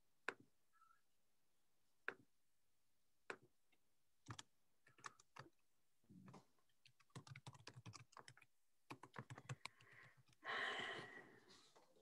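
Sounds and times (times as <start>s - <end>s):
computer keyboard typing: 4.2s - 5.6s, 6.8s - 10.4s.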